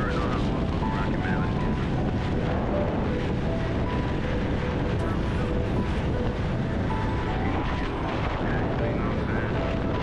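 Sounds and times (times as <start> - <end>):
wind rush on microphone: 0.0 - 10.0.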